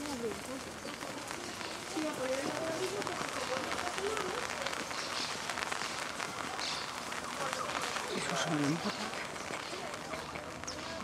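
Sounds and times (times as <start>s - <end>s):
rain pattering: 0.0s - 11.0s.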